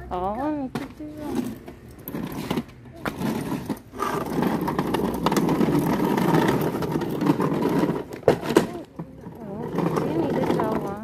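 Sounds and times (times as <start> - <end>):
plastic wheels rumbling on pavement: 0.4 - 11.0.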